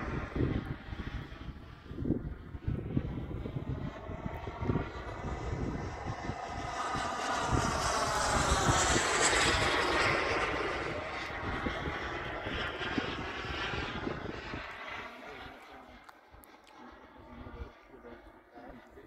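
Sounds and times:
wind buffeting microphone: 0.0 - 16.0
model jet engine whining: 0.0 - 19.0.

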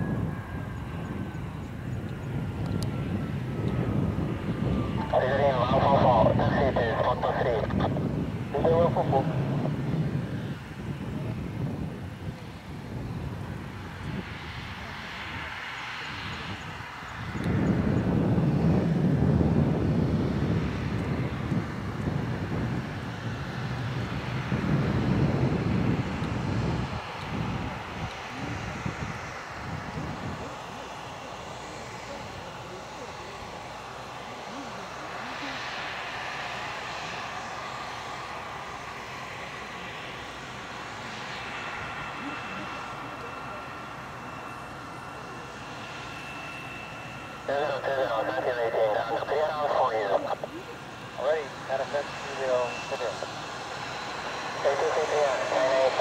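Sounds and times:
high engine whine: 0.0 - 56.0
jet engines running: 0.0 - 56.0.

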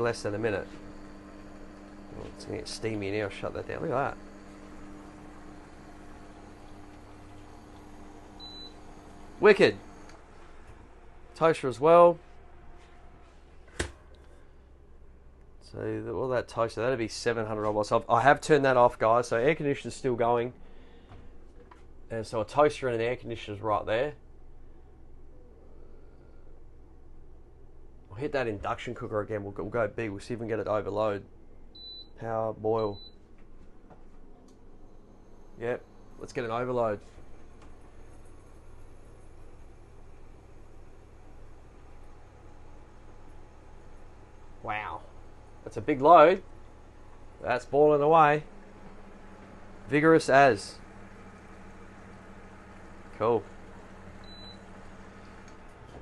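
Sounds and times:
air conditioner hum: 0.0 - 56.0.

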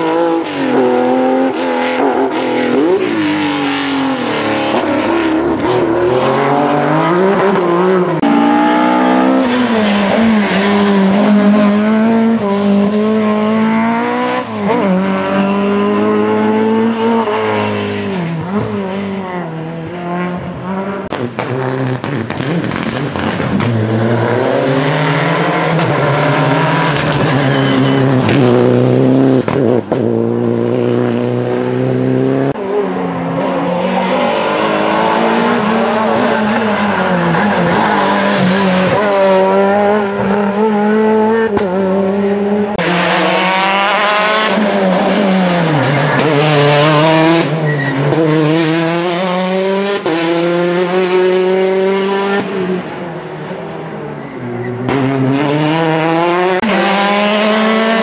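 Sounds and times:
rally cars passing at speed: 0.0 - 58.0.

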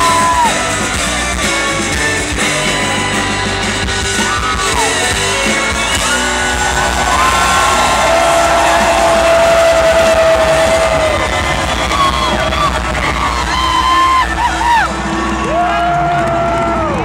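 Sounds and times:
people whooping and yelling: 0.0 - 0.9, 5.9 - 17.0
live rock band playing: 0.0 - 17.0.

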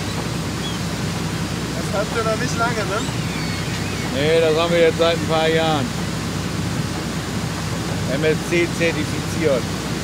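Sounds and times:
boat engine hum: 0.0 - 10.0
wind and sea rushing: 0.0 - 10.0.

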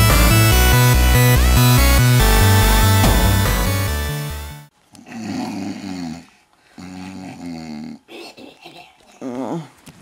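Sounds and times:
person making snoring sounds: 5.0 - 8.1.

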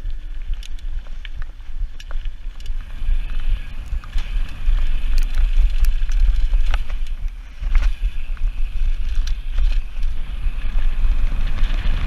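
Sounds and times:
bike rattling over bumps: 0.0 - 12.0
tyres on loose gravel: 0.0 - 12.0
wind buffeting microphone: 0.0 - 12.0.

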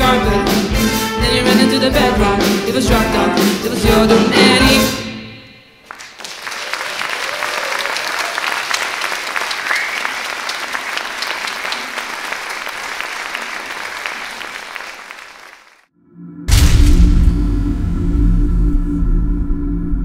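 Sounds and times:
audience applauding: 5.8 - 15.9.

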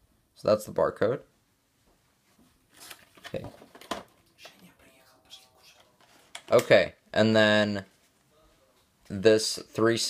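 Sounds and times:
person speaking quietly: 4.3 - 6.7.

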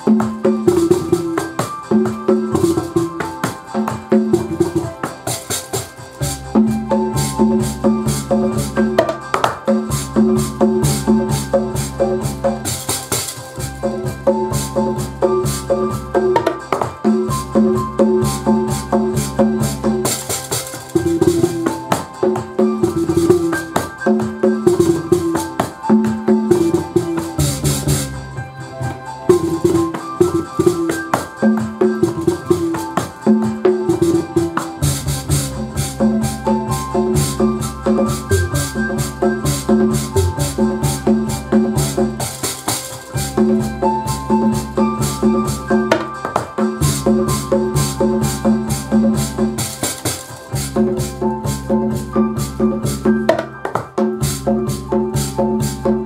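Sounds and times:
house drum beat: 0.0 - 56.0
keyboard repeating melody: 0.0 - 56.0
deep bass line: 6.2 - 12.8, 13.5 - 20.2, 21.0 - 31.0, 33.4 - 42.4, 43.2 - 46.2, 46.8 - 56.0
bass harp plucked low notes: 34.8 - 42.2, 50.6 - 53.4.

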